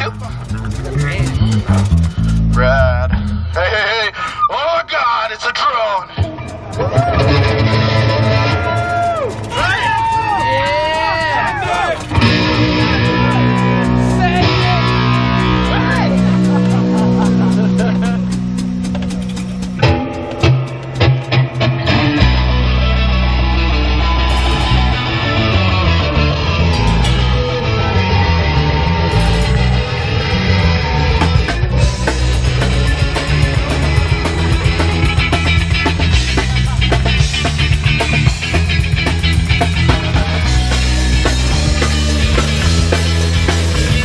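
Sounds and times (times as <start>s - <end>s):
live rock band playing: 0.0s - 4.5s, 6.1s - 44.0s.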